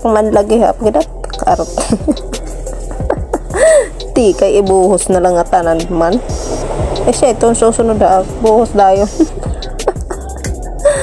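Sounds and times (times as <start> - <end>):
background music: 0.0 - 11.0
woman laughing: 1.6 - 4.1, 9.0 - 11.0
woman gasping: 3.5 - 4.1, 10.8 - 11.0.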